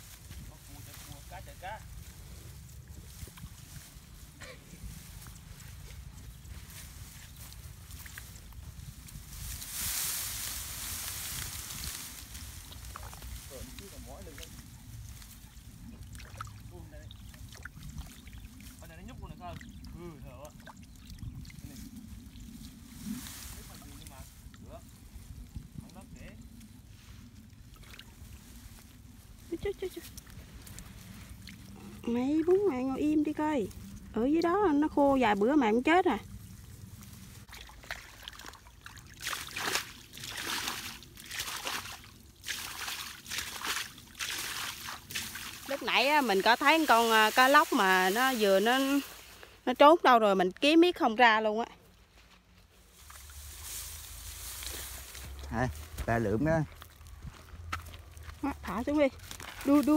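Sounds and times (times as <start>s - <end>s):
hands squelching in mud and water: 14.4s - 23.6s, 27.3s - 32.0s, 36.9s - 49.5s, 52.9s - 56.0s.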